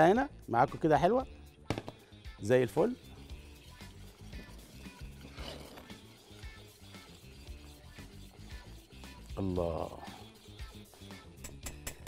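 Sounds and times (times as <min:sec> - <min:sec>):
faint background music: 0:00.0 - 0:12.0
whisk rattling in metal saucepan: 0:03.3 - 0:10.9.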